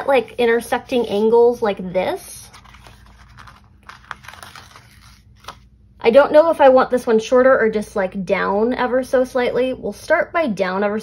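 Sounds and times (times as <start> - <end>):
tape peeling rustle: 2.5 - 5.7.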